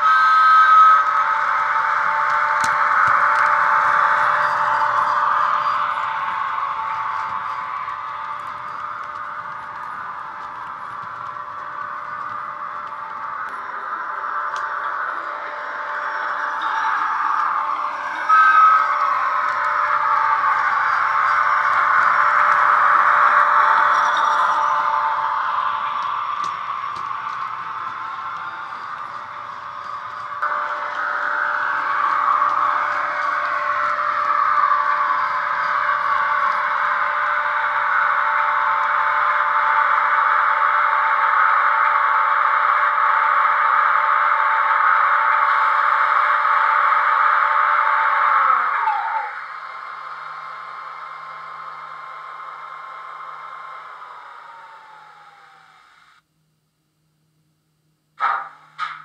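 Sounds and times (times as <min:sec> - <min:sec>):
electric locomotive whine: 0:00.0 - 0:56.4.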